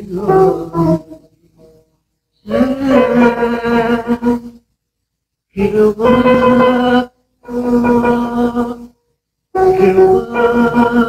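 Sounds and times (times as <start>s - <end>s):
person singing long note: 0.0s - 1.8s, 2.4s - 4.6s, 5.6s - 9.0s, 9.6s - 11.0s.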